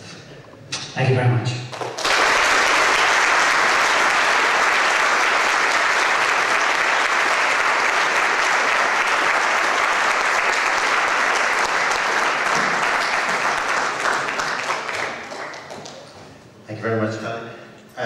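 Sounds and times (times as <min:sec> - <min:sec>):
audience applauding: 0:01.7 - 0:16.4.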